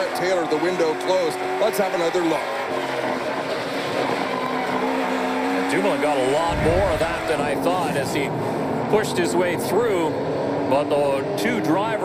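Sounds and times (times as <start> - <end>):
race car engine running hard: 0.0 - 12.0.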